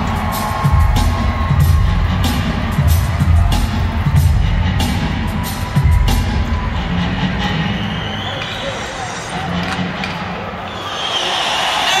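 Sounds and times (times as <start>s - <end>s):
crowd chatter echoing: 0.0s - 12.0s.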